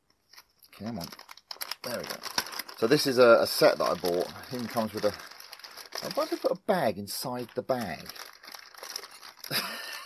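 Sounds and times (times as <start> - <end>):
plastic bags crinkling: 0.3 - 10.0.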